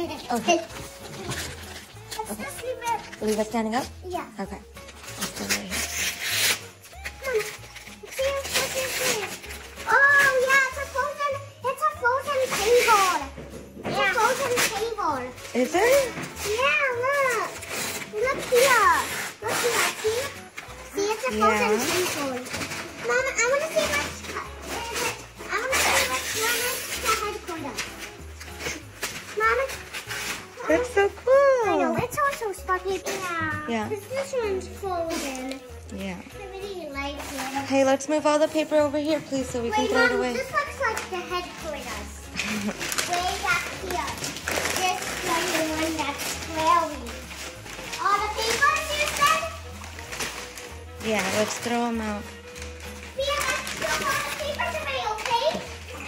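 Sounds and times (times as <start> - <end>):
wrapping paper tearing: 0.0 - 56.0.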